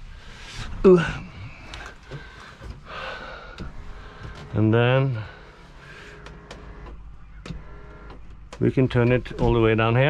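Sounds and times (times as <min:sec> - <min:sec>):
electric motor running faintly: 0:03.3 - 0:09.9.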